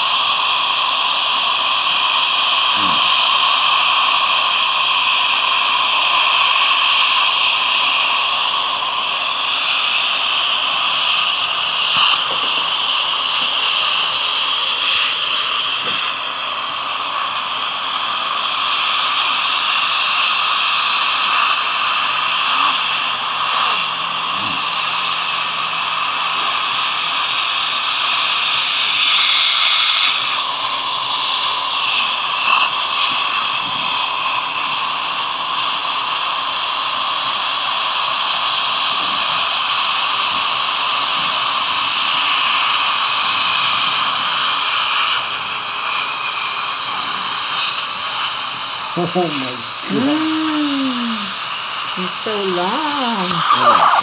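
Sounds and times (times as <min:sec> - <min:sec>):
saliva ejector suction hissing: 0:02.6 - 0:04.2, 0:06.1 - 0:34.4, 0:44.0 - 0:54.0.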